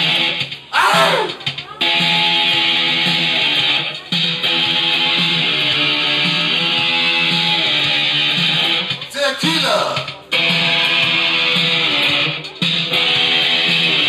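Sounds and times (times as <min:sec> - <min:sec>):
distorted electric guitar chords: 0:00.0 - 0:08.9, 0:10.3 - 0:14.0.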